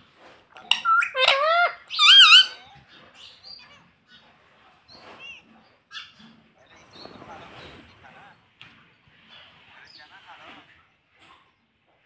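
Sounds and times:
parakeet high-pitched calls: 0.6 - 2.7
soft parakeet chatter: 0.6 - 8.5.

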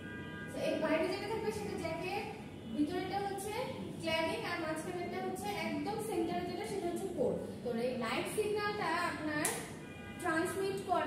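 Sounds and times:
woman lecturing: 0.5 - 11.0.

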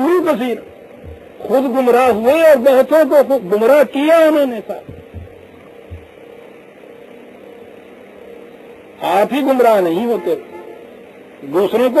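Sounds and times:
electrical mains hum: 0.0 - 12.0
recording hiss: 0.0 - 12.0
soft low thumps: 0.6 - 2.3, 4.8 - 6.3.

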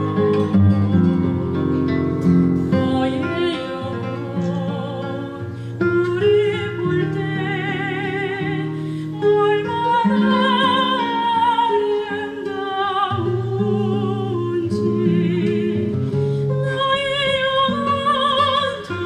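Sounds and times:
classical guitar: 0.0 - 19.0
soprano singing with vibrato: 2.7 - 19.0.

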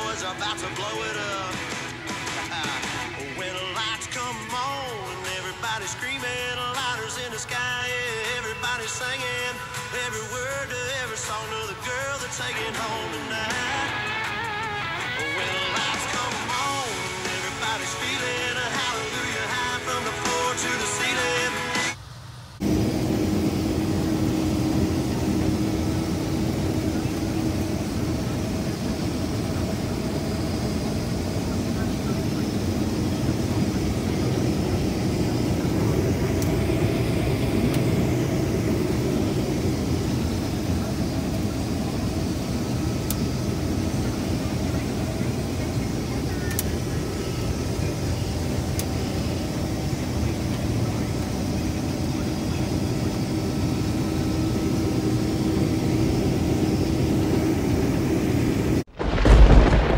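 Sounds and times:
combine harvester engine drone: 0.0 - 59.9.

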